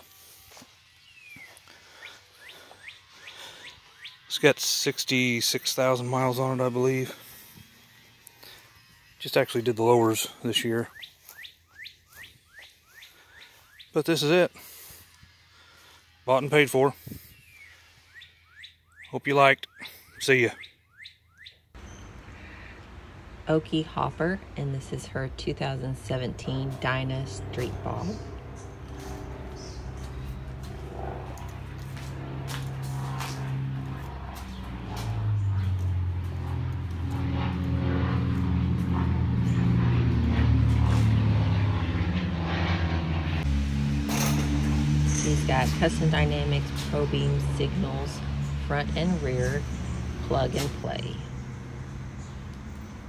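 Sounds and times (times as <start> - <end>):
birds chirping: 0.1 - 42.5, 45.0 - 53.0.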